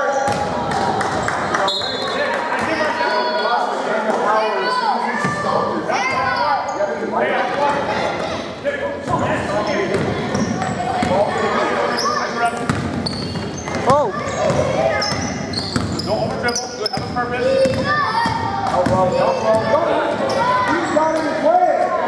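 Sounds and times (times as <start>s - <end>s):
people shouting and chattering: 0.0s - 22.0s
basketball bouncing on hardwood floor: 12.6s - 16.0s.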